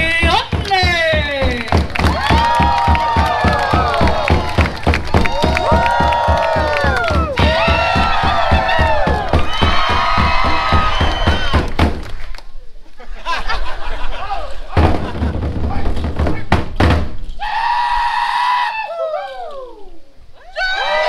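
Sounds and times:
drums beaten in fast rhythm: 0:00.0 - 0:12.0, 0:14.7 - 0:17.1
voices shouting long calls: 0:02.1 - 0:11.6, 0:17.4 - 0:21.0.

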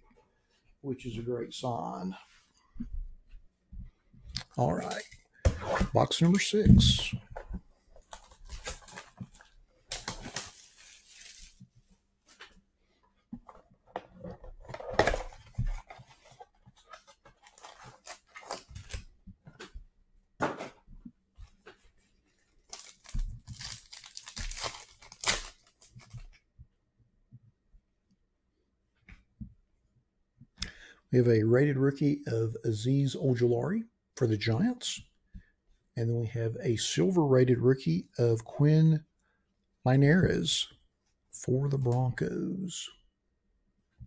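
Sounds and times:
card packs ripping and crinkling: 0:04.6 - 0:05.0, 0:08.1 - 0:11.6, 0:14.8 - 0:19.0, 0:22.6 - 0:26.1.

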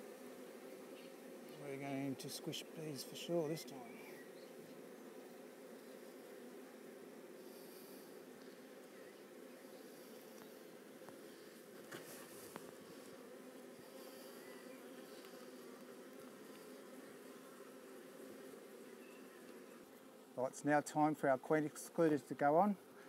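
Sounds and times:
honey bees humming: 0:00.0 - 0:23.0.

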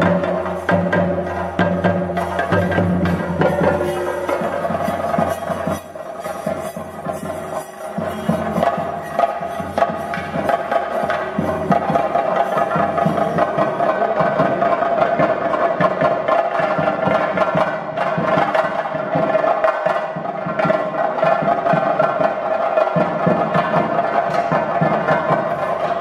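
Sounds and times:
held high tone: 0:00.0 - 0:14.2
fast drumming: 0:00.0 - 0:26.0.

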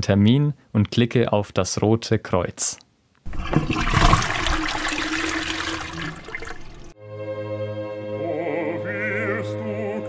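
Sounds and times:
toilet flushing: 0:03.3 - 0:07.0.

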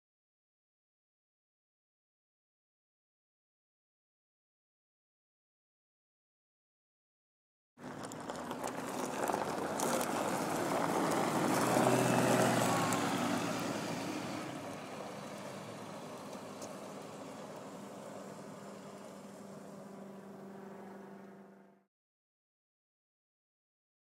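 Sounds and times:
tyres crunching on gravel: 0:07.8 - 0:18.9
bus engine: 0:07.8 - 0:21.9.

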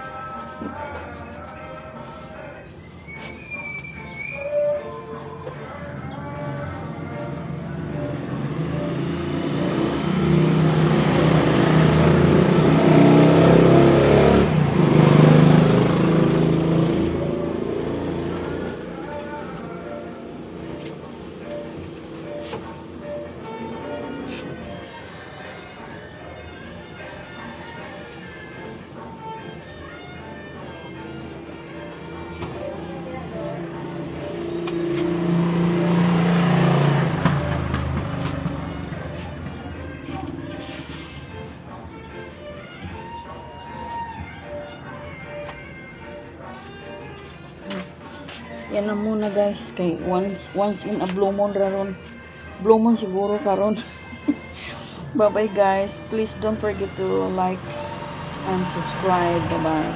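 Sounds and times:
motor vehicle passing: 0:06.3 - 0:19.4, 0:29.2 - 0:41.6, 0:56.6 - 0:59.9.

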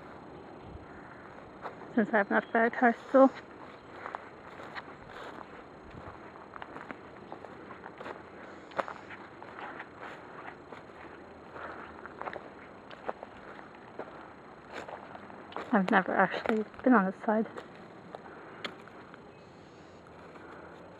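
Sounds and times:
footsteps crunching through dry leaves: 0:03.4 - 0:19.2
twigs cracking: 0:03.4 - 0:19.3.

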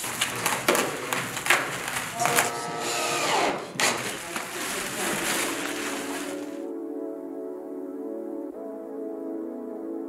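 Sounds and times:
cordless drill driving into wood: 0:02.8 - 0:04.1.

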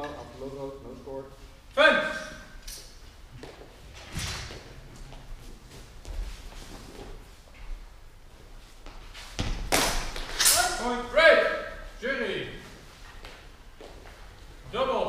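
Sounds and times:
footsteps on gym floor: 0:03.0 - 0:10.4, 0:12.7 - 0:14.8.

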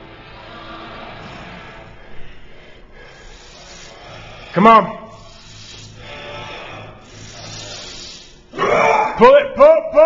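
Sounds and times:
steady low hum: 0:00.0 - 0:10.0
loud strained voice: 0:03.3 - 0:10.0.

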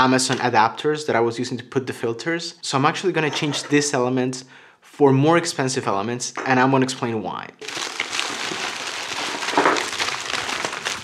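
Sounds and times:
plastic envelope crinkling: 0:07.6 - 0:11.0.

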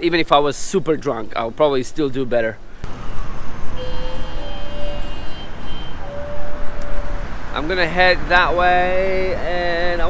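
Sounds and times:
faint vehicle whines: 0:00.8 - 0:10.0
road traffic rushing past: 0:02.6 - 0:10.0.

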